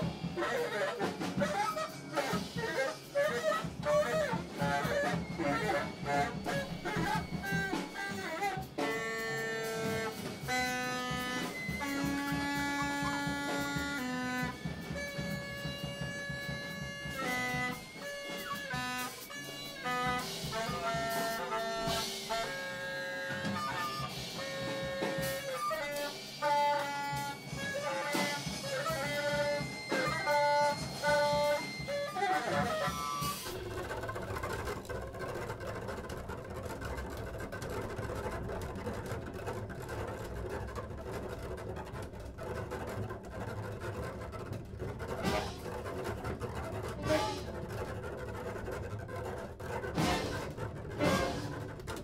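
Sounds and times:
large ensemble improvising: 0.0 - 52.0.

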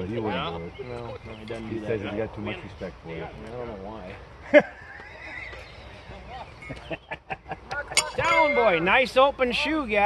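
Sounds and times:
men laughing: 4.4 - 5.6, 6.6 - 8.3.

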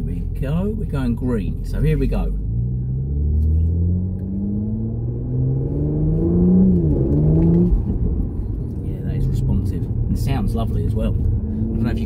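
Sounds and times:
car engine accelerating hard: 1.6 - 12.0.

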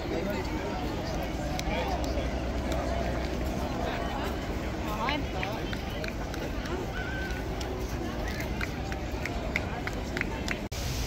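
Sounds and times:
hissy outdoor ambience: 0.0 - 11.0
outdoor crowd chatter: 0.0 - 11.0.

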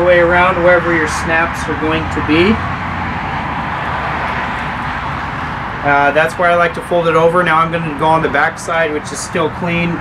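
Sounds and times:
man's voice: 0.0 - 2.6.

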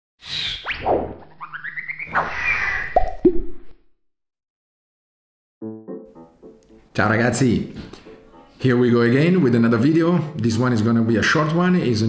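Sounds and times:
cartoon swishes: 0.3 - 3.8
plopping blips: 3.0 - 3.6.

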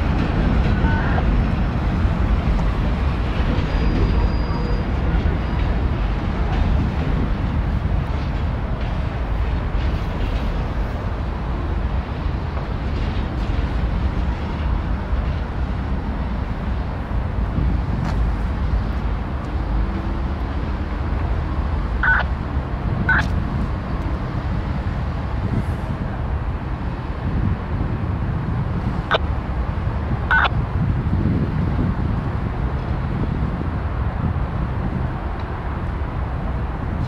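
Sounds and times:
freight train rumbling: 0.0 - 37.0.

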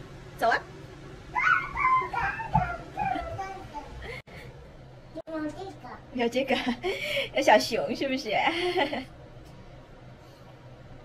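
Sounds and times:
toddler squealing: 1.4 - 3.0.

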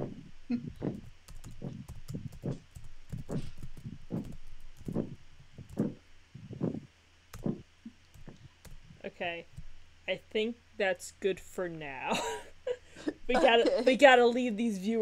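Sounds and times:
low steady hum: 0.0 - 15.0
computer keyboard typing: 1.0 - 5.9.

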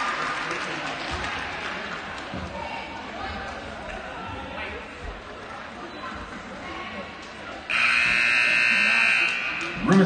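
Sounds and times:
scoreboard horn blast: 7.7 - 9.5.

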